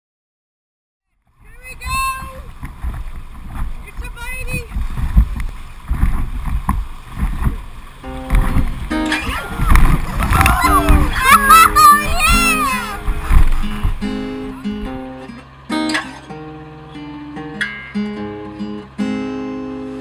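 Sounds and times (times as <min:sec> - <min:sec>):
wind on microphone: 0:01.3 - 0:15.1
paddles splashing: 0:01.3 - 0:20.0
river water churning: 0:01.3 - 0:20.0
people calling out and laughing: 0:01.4 - 0:02.5, 0:09.0 - 0:15.6
music with held notes: 0:08.0 - 0:09.4, 0:10.7 - 0:20.0.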